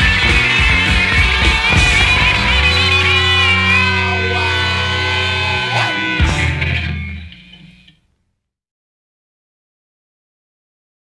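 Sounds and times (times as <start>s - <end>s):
punk rock guitar chord ringing: 1.2s - 7.3s.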